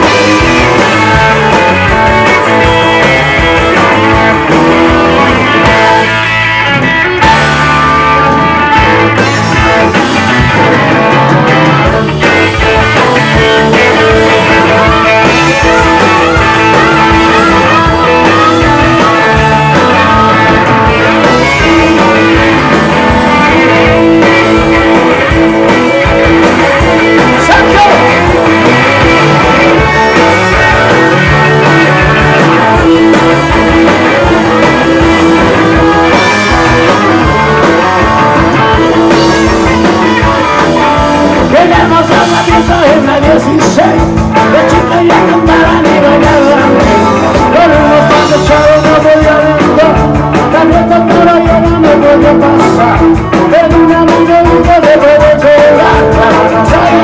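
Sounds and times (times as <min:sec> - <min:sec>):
electric guitar: 0:00.0 - 0:57.0
live rock band playing: 0:00.0 - 0:57.0.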